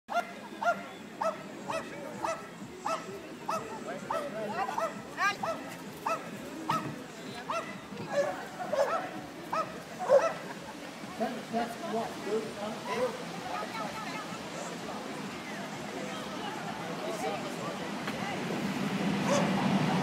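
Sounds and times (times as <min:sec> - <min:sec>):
dog barking high-pitched: 0:07.5 - 0:10.4.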